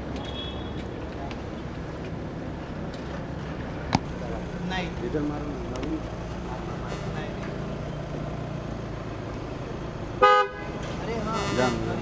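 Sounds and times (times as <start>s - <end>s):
car engine humming: 4.2s - 12.0s
faint voices: 11.0s - 12.0s.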